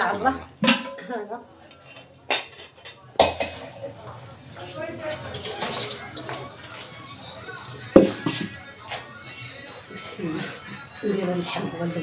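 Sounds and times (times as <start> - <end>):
pot lid clanking on cookware: 0.6 - 1.0.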